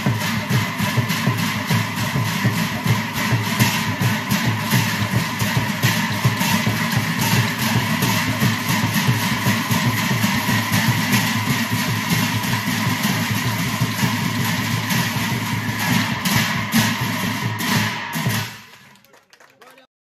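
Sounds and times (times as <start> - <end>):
brass cymbals clashing: 0.0 - 18.8
drums beating: 0.0 - 19.8.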